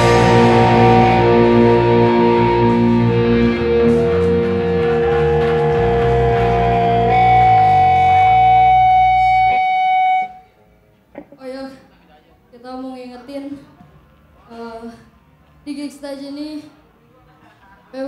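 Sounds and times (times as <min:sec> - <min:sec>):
punk band playing live: 0:00.0 - 0:10.3
sustained high guitar note: 0:00.0 - 0:10.5.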